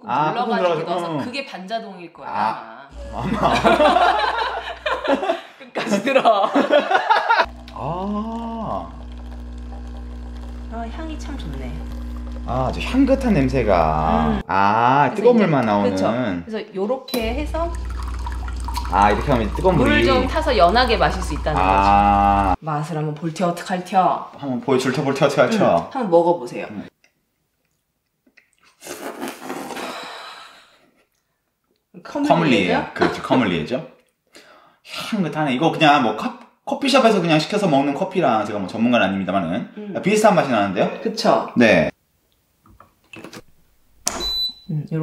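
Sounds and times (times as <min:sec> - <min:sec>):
espresso machine pump humming: 0:02.9 - 0:05.0, 0:07.4 - 0:14.4, 0:17.2 - 0:22.6
breathy sip and exhale: 0:28.6 - 0:30.7.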